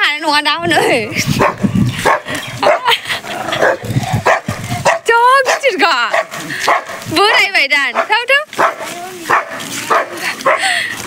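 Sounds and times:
dogs barking and yipping: 0.7 - 11.0.

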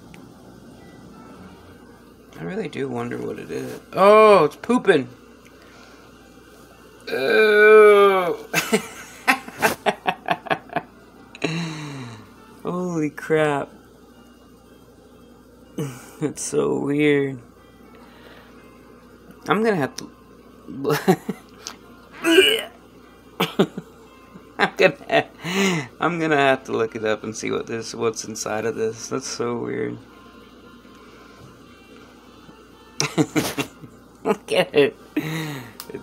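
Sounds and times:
man mumbling: 7.1 - 8.5
man laughing in breathy bursts: 8.5 - 12.2, 23.4 - 23.9, 33.0 - 33.9.

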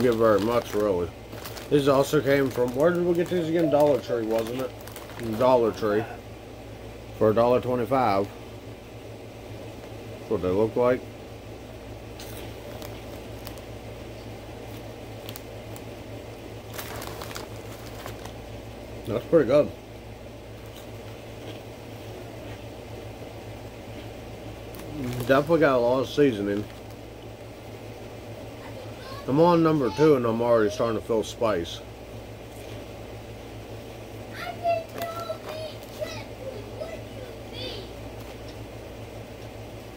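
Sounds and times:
steady low hum: 0.0 - 39.9
chewing crunchy snack: 12.1 - 13.7, 16.7 - 18.4, 20.6 - 22.8.

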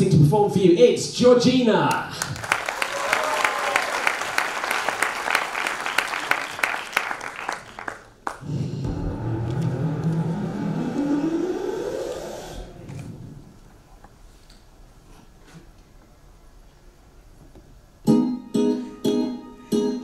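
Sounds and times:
audience applause: 2.2 - 8.5
instrumental music with low notes: 18.0 - 20.0.

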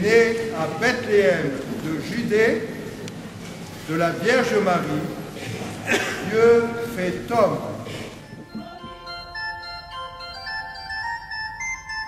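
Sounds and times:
organ music: 6.5 - 12.0.

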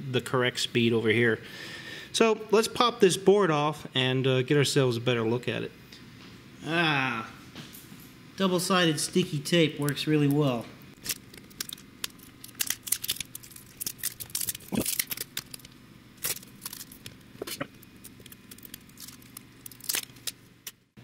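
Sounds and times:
faint steady hum: 0.0 - 21.0
tape crackling and tearing clicks: 9.8 - 21.0.

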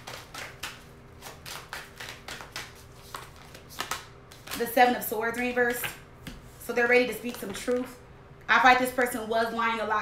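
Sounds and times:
cards being shuffled: 0.0 - 4.7.

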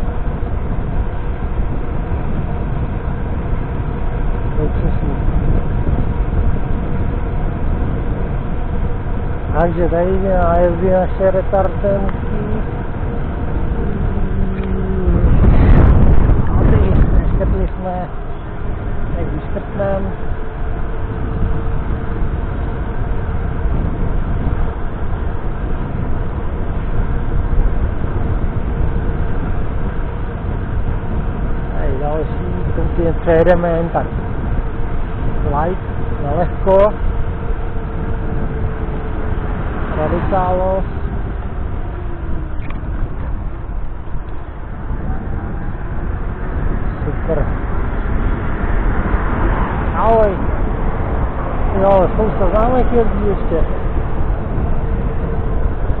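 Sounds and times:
scooter road rumble: 0.0 - 56.0
wind rush on microphone: 0.0 - 56.0.

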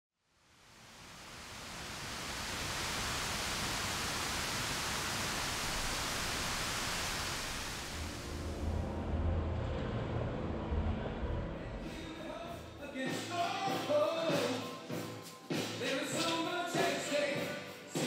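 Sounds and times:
water cascading down fountain wall: 0.6 - 8.2.

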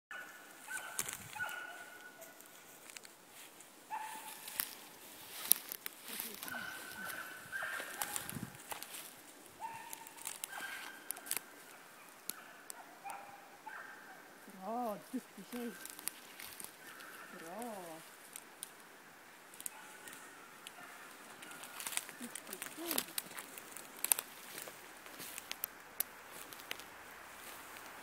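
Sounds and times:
footsteps on twigs and moss: 0.1 - 13.8, 14.5 - 28.0
twigs snapping: 0.7 - 13.2, 14.5 - 28.0.

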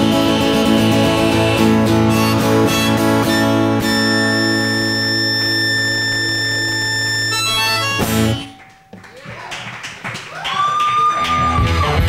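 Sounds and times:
sustained acoustic guitar chord: 0.0 - 8.9
high whistling tone: 2.1 - 9.2.

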